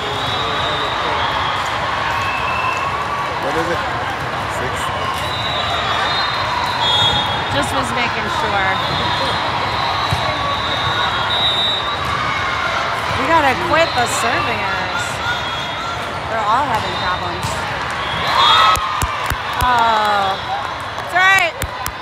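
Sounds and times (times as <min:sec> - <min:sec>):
voices calling and chattering: 0:00.0 - 0:22.0
volleyballs being hit and bouncing: 0:15.9 - 0:19.9, 0:21.5 - 0:22.0.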